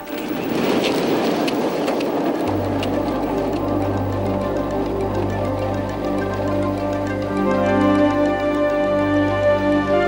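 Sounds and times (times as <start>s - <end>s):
aircraft rushing noise with rattling: 0.0s - 10.0s
background music with low drone: 0.0s - 10.0s.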